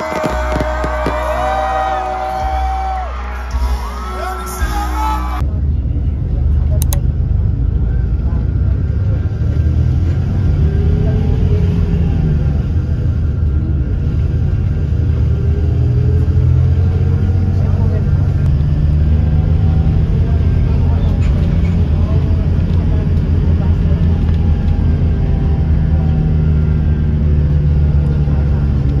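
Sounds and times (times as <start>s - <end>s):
faint indistinct voices: 0.0s - 14.4s, 16.1s - 29.0s
bus engine drone: 0.0s - 29.0s
road noise: 0.0s - 29.0s.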